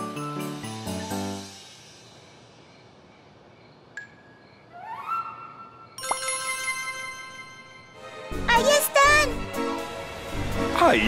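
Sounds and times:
bright bell-like chime: 6.0 - 8.0.

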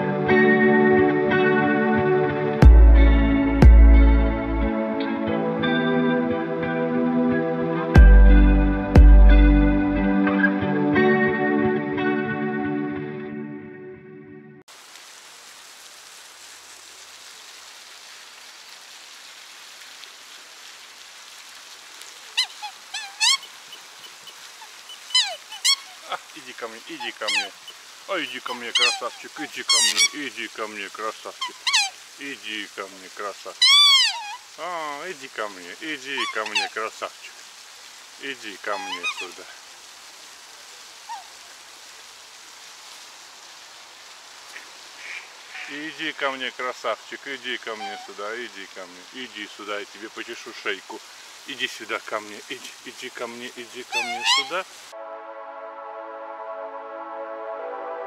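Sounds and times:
fountain splashing: 14.7 - 55.0
swans calling: 22.2 - 34.7, 35.8 - 37.2, 38.3 - 39.5, 41.0 - 41.5, 44.5 - 46.0, 47.4 - 49.5, 52.6 - 54.9
short falling call: 53.9 - 54.6.

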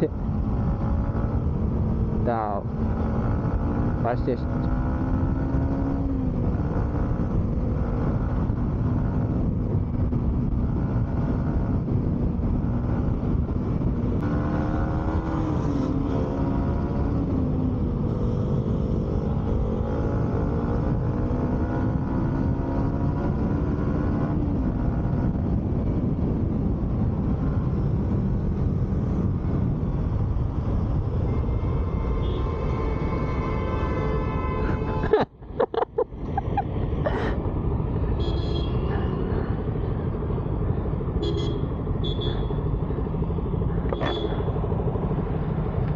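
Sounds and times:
wind and road noise: 0.0 - 45.9.

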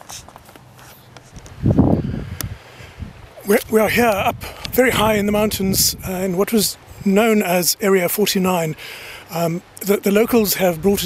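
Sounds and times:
low rumbling rush of noise: 1.4 - 7.3.

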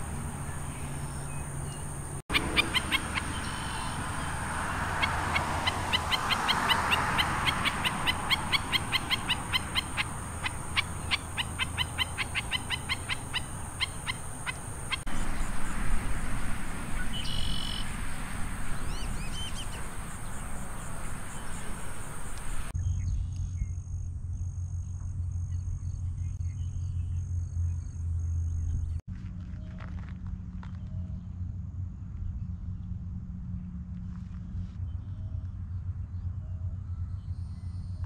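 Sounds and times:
bird calling sharp high notes: 0.0 - 15.1
faint calls of other birds: 0.0 - 22.7.

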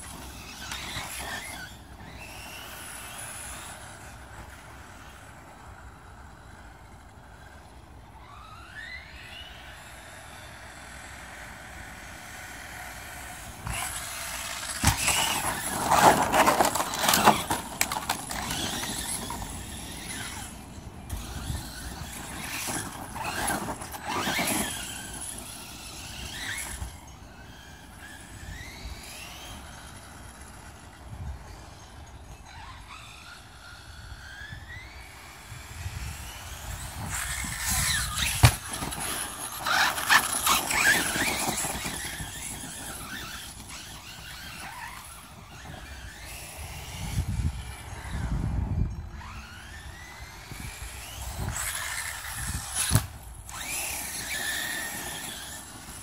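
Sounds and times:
electric motor whining: 0.0 - 56.0
tyre and chassis clatter: 13.6 - 20.5, 36.8 - 46.4.

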